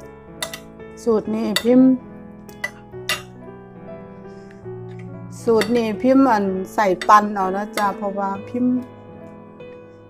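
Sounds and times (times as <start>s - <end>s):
soft background music: 0.0s - 10.0s
metal spoon clinking on plate: 0.4s - 0.7s, 2.5s - 3.3s.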